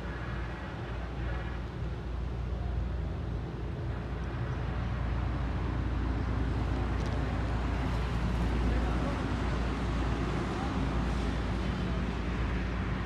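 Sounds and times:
vehicle rumble and road noise: 0:00.0 - 0:13.0.

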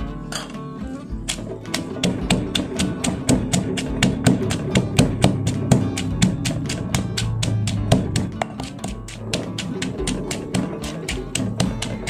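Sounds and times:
background music: 0:00.0 - 0:12.0
stone pestle pounding in mortar: 0:01.2 - 0:12.0.

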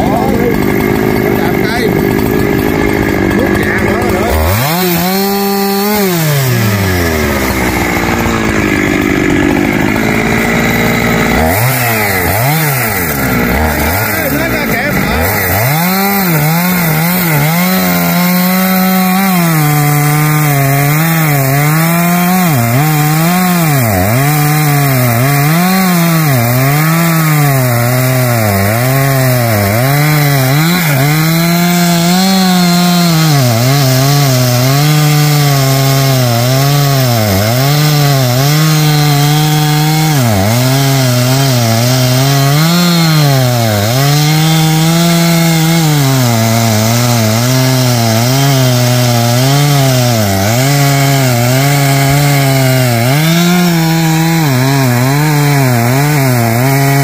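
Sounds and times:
chainsaw cutting wood: 0:00.0 - 0:57.0.

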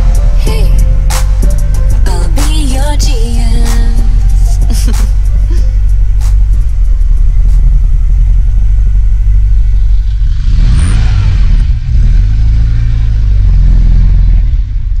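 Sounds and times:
car engine revving: 0:00.0 - 0:15.0.

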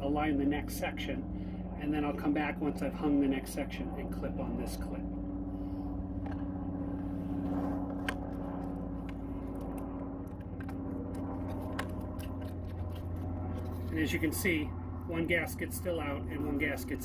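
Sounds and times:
low engine-like hum: 0:00.0 - 0:17.0.

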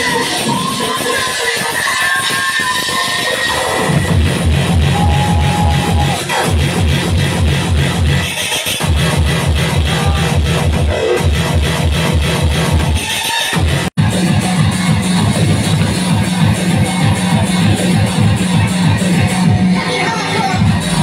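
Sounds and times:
hardcore electronic dance music: 0:00.0 - 0:21.0
fast heavy kick drum: 0:03.8 - 0:08.2, 0:13.6 - 0:19.8.

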